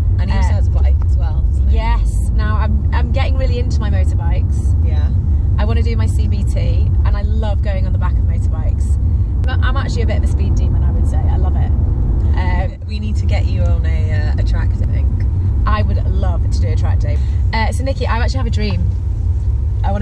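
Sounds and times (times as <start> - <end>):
car cabin road rumble: 0.0 - 20.0
women talking: 0.2 - 11.7, 12.4 - 18.9.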